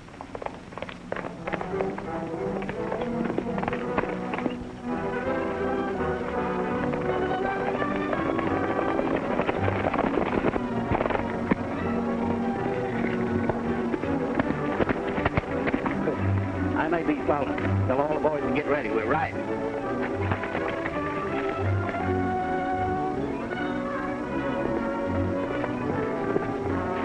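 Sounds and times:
galloping horses hooves: 0.0s - 27.0s
orchestral film music: 0.6s - 27.0s.

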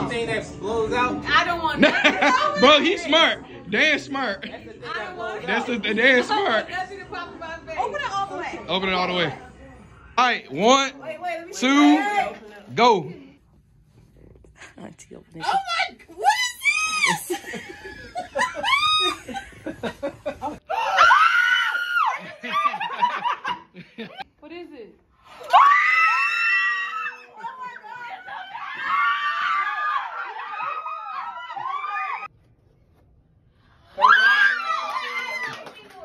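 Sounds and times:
people laughing: 1.8s - 3.2s, 17.0s - 20.9s, 22.0s - 24.2s
people screaming and squealing: 16.2s - 17.5s, 18.4s - 19.4s, 20.7s - 22.5s, 25.3s - 32.3s, 33.8s - 35.7s.

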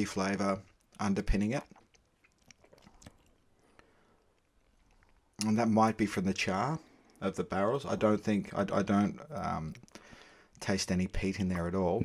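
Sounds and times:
mouth clicks and lip smacks: 0.6s - 5.5s, 9.0s - 10.6s.

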